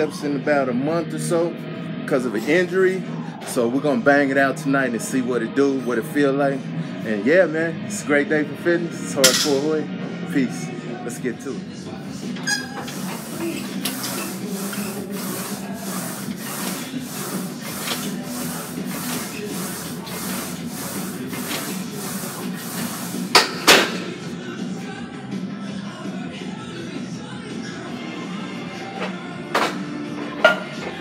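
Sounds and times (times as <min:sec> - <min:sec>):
gym background noise: 0:07.2 - 0:24.8, 0:26.0 - 0:31.0.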